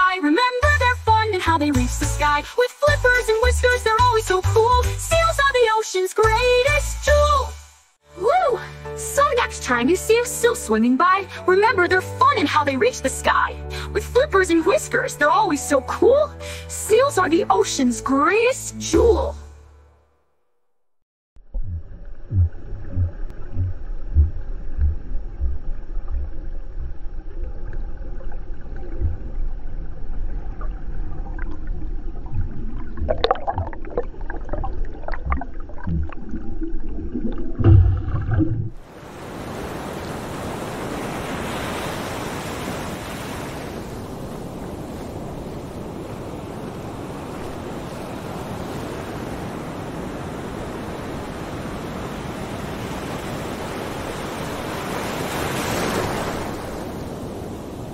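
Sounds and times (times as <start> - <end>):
low underwater thumps: 21.4 - 38.8
bubbling: 21.4 - 38.9
steady underwater hum: 21.4 - 41.0
surf washing onto shore: 38.8 - 57.9.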